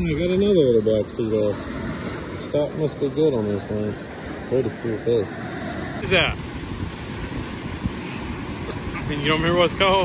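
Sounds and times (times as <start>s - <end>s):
small waves breaking: 0.0s - 10.0s
wind rumbling on microphone: 0.0s - 10.0s.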